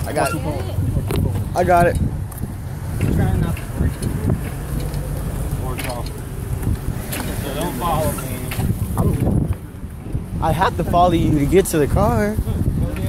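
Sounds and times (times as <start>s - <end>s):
faint voices talking: 0.0s - 13.0s
wind buffeting microphone: 0.0s - 13.0s.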